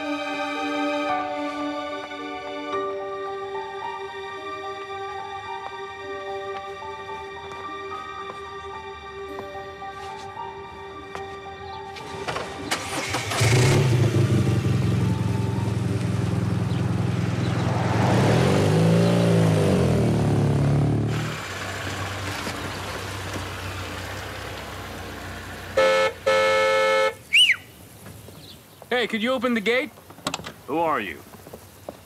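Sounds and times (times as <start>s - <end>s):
car engine idling: 12.0s - 18.1s, 19.0s - 27.3s
motorcycle engine revving: 12.0s - 26.2s
car horn: 25.7s - 27.6s.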